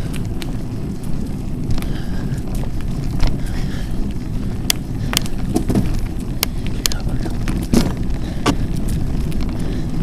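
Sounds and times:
bike tyres rumbling on gravel: 0.0s - 10.0s
wind buffeting microphone: 0.0s - 10.0s.

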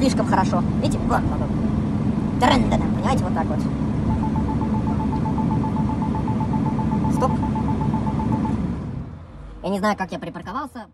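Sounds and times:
car engine rumble: 0.0s - 10.9s
parking sensor beeping: 4.1s - 9.0s.

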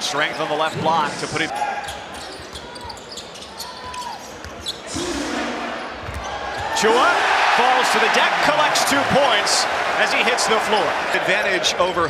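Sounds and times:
shoes squeaking: 1.8s - 5.0s.

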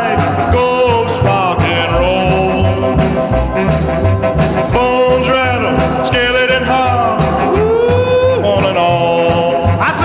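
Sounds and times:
swooping melody: 0.0s - 10.0s.

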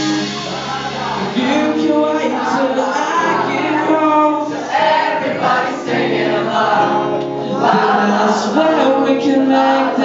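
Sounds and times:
live rock band: 0.0s - 10.0s
person singing: 0.0s - 10.0s
strummed guitar: 0.0s - 10.0s.

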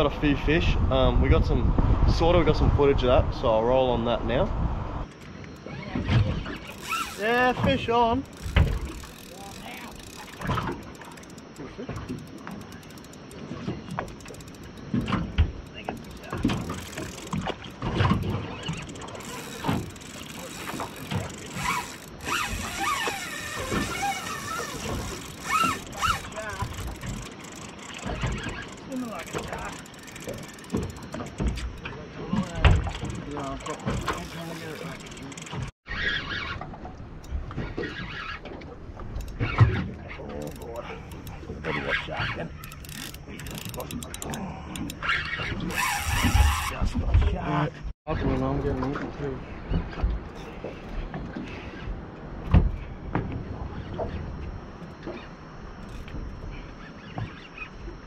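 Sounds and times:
fishing reel winding: 6.5s - 35.7s, 39.2s - 39.5s, 40.2s - 46.8s
knocks around boat: 48.6s - 55.3s.

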